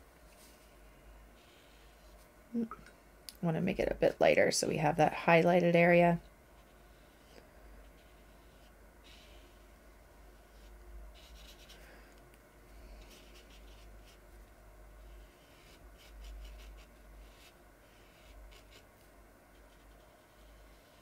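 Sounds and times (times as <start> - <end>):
brush stroking across paper: 6.6 - 12.0, 12.8 - 21.0.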